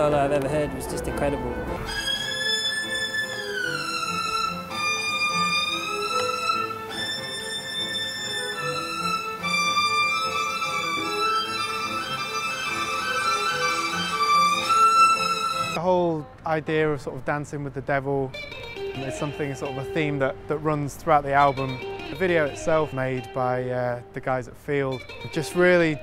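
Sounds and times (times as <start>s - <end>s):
solo violin playing high notes: 0.0s - 15.8s, 18.4s - 20.5s, 21.2s - 23.5s
low repeating accompaniment: 0.0s - 26.0s.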